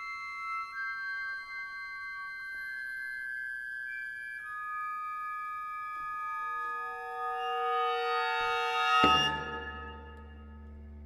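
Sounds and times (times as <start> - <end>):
lower pitches entering: 6.2 - 11.0
held high tones chord: 6.4 - 10.4.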